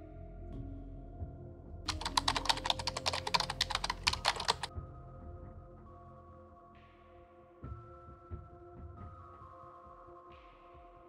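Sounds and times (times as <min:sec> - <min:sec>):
soft background music: 0:00.0 - 0:11.0
rapid keyboard key clicks: 0:01.9 - 0:04.7.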